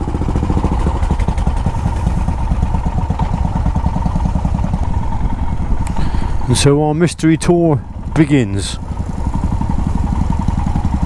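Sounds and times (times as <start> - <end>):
motorcycle engines idling: 0.0 - 11.0.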